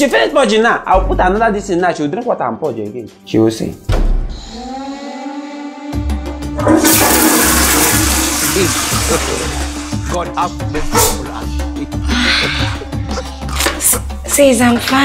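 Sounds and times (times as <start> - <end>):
background music with low beat: 0.0 - 4.5, 6.0 - 15.0
toilet flushing: 6.6 - 10.1.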